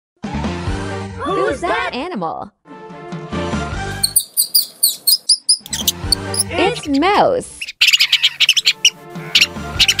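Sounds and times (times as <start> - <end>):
background music: 0.2 - 4.4, 5.6 - 10.0
mouse squeaks: 4.0 - 10.0.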